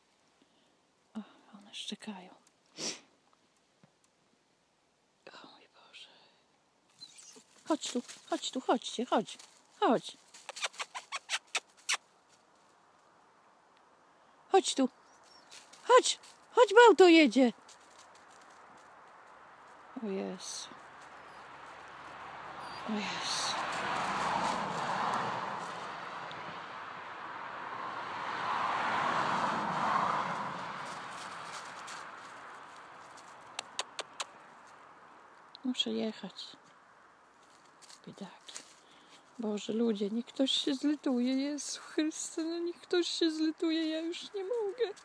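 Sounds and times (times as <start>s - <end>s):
person making kissing squeaks: 10.4s - 12.1s, 33.6s - 34.3s
vehicle passing by: 17.5s - 35.4s.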